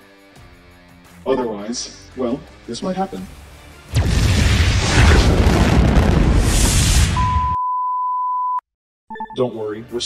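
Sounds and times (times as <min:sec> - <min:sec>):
deep rumbling explosion: 0:03.9 - 0:07.6.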